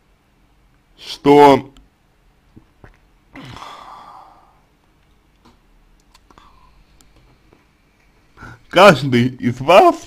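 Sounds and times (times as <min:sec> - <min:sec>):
man sighing: 0:03.3 - 0:04.7, 0:08.4 - 0:08.7.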